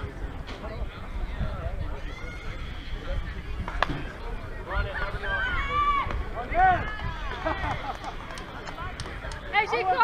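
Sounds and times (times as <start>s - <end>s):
wind rumble on microphone: 0.0s - 9.4s.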